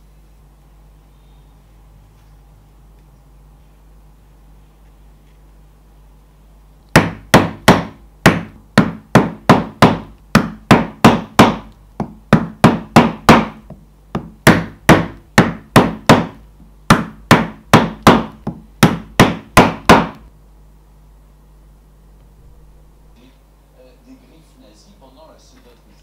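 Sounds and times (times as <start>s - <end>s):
mallet striking stitching chisel: 6.9s - 20.2s.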